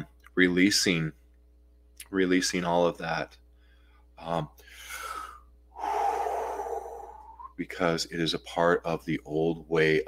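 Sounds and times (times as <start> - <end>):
man breathing: 3.5 - 7.6.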